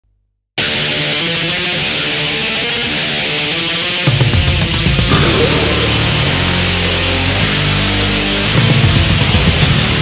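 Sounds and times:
distorted electric guitar chords: 0.6s - 9.2s.

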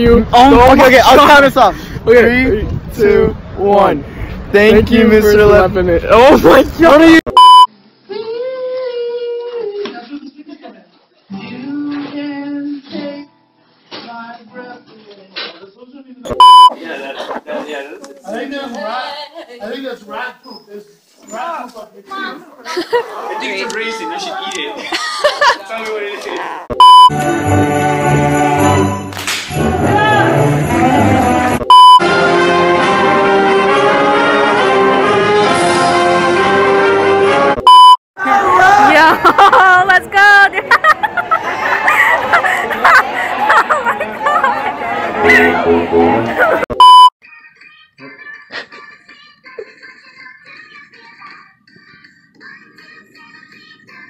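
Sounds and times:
loud high electronic beep: 7.3s - 7.7s, 16.3s - 16.7s, 26.7s - 27.2s, 31.6s - 32.1s, 37.6s - 38.0s, 46.7s - 47.1s.

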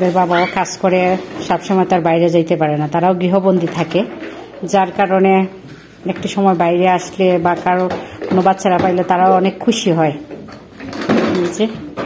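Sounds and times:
person speaking: 0.0s - 10.3s
faint knocks and clatter: 5.7s - 9.5s.

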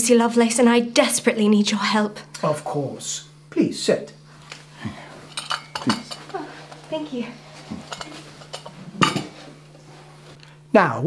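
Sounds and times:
cup rattling on saucer: 5.3s - 6.8s, 7.5s - 9.5s.

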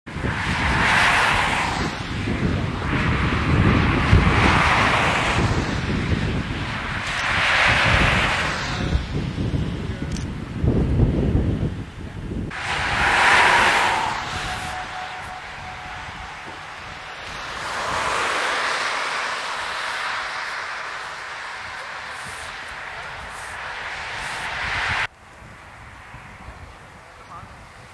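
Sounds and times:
cars passing on road: 0.1s - 27.9s
wind noise on microphone: 0.1s - 27.9s.

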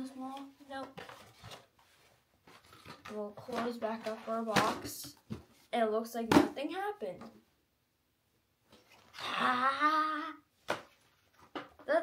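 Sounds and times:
cardboard packaging rustling: 0.9s - 4.5s.

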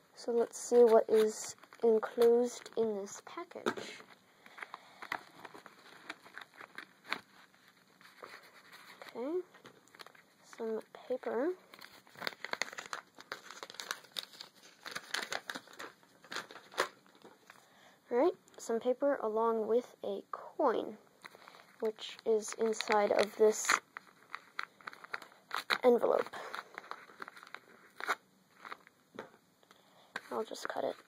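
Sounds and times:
paper crinkling: 4.0s - 17.6s, 21.2s - 28.9s.

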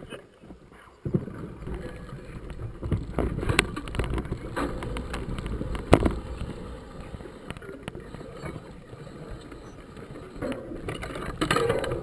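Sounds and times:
bike rattling over bumps: 1.0s - 12.0s
tyres rumbling on dirt: 1.1s - 12.0s
wind on microphone: 1.1s - 12.0s.

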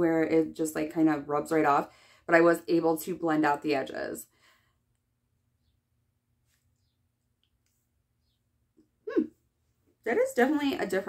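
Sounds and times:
woman humming hmm: 9.1s - 9.4s.

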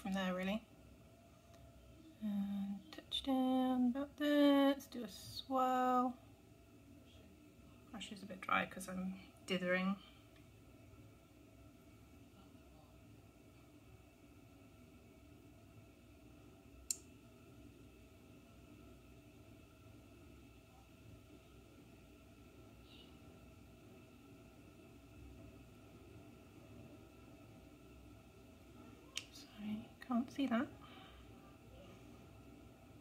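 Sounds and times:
low hum: 0.0s - 33.0s.

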